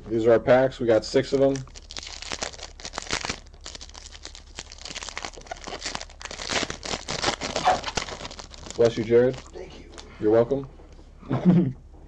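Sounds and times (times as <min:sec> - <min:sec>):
foil wrapper crinkling: 0:01.3 - 0:10.1.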